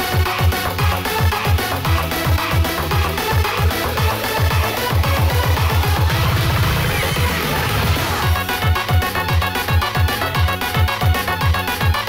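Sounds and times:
bass-heavy kick drums: 0.0s - 12.0s
electronic dance music: 0.0s - 12.0s.

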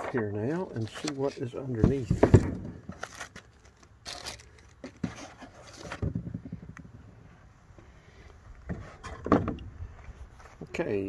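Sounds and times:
plastic bag crinkling: 3.0s - 4.8s.

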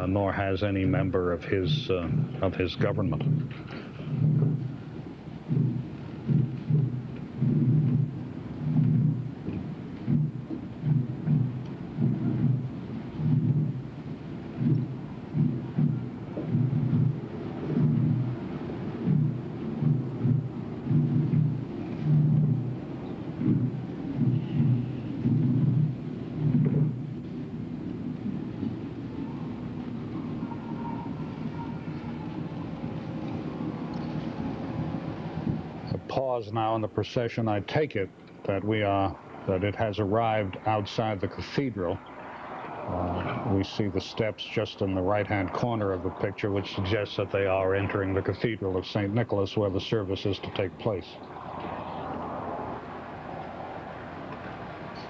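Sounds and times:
steady low background: 0.0s - 55.0s
slow muffled drum beats: 0.9s - 36.2s.

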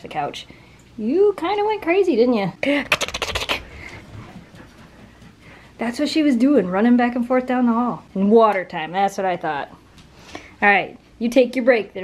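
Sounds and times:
dog claws clicking on floor: 2.9s - 4.0s.

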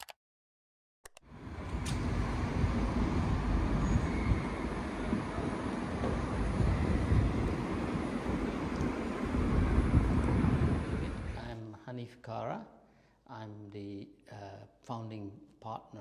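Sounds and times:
road traffic rumble: 1.3s - 11.4s.

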